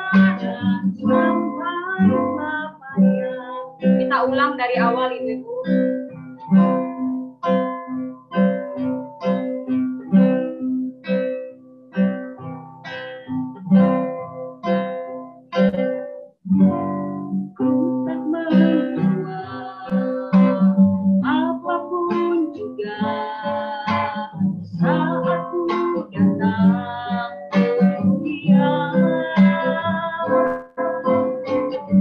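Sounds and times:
woman singing worship song: 0:00.0 - 0:05.7, 0:17.9 - 0:30.6
acoustic guitar chords: 0:00.0 - 0:32.0.

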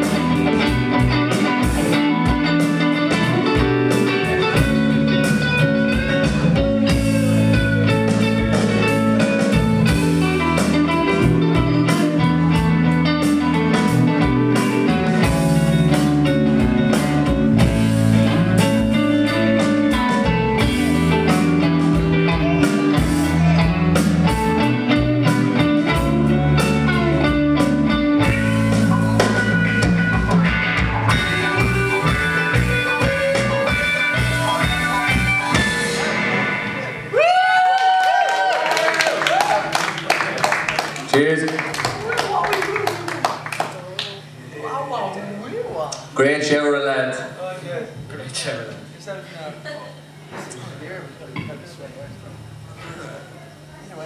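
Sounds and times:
live rock band playing: 0:00.0 - 0:44.4.

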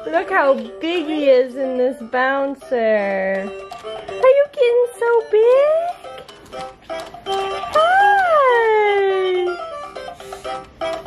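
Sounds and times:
electronic toy music: 0:00.0 - 0:11.0.

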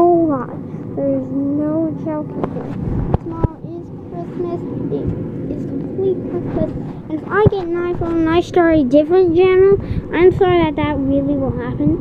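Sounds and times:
boy's voice in fragments: 0:00.0 - 0:12.0
steady low rumble: 0:00.0 - 0:12.0.

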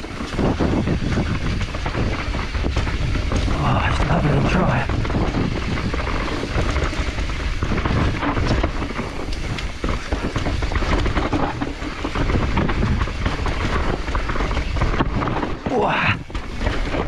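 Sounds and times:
bike clattering over roots: 0:00.0 - 0:17.0
tyres rumbling on dirt: 0:00.0 - 0:17.0
wind buffeting microphone: 0:00.0 - 0:17.0.

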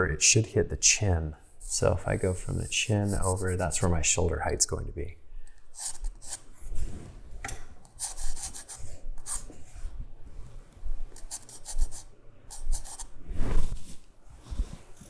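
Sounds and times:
pencil sketching on paper: 0:02.2 - 0:03.6, 0:08.0 - 0:09.4, 0:11.2 - 0:13.1.

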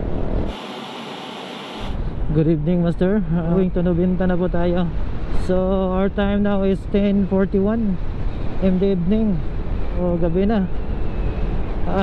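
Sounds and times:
wind and road rumble: 0:00.0 - 0:00.6, 0:01.7 - 0:12.0
thin steady hiss: 0:00.5 - 0:02.0.

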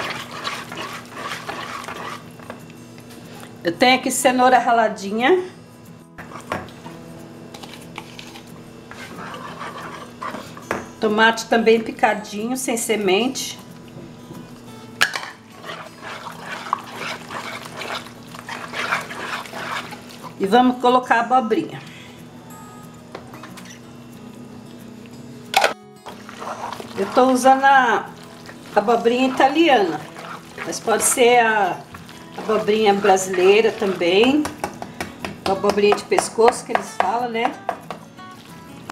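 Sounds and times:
wire whisk stirring batter: 0:00.0 - 0:02.3, 0:08.9 - 0:10.4, 0:15.6 - 0:20.4, 0:26.1 - 0:34.8
faint background music: 0:00.0 - 0:38.9.

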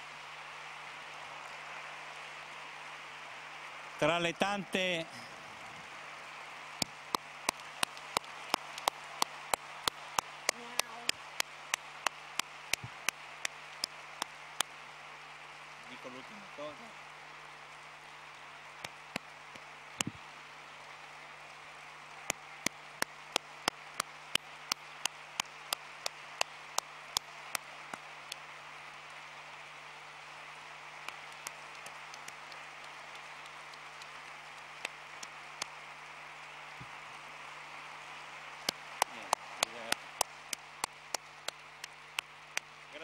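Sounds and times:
audience applauding: 0:00.0 - 0:43.0
sharp single claps close by: 0:06.8 - 0:14.7, 0:18.8 - 0:20.2, 0:22.3 - 0:28.4, 0:31.0 - 0:35.8, 0:38.6 - 0:42.7.

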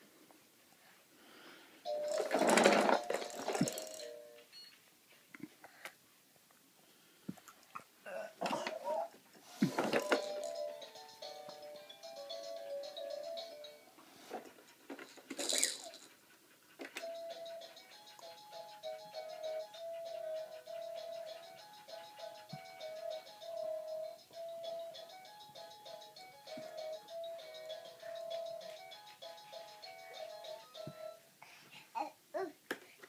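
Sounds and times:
plastic toy rattling whirr: 0:01.9 - 0:04.2, 0:09.7 - 0:11.2, 0:14.3 - 0:16.1.

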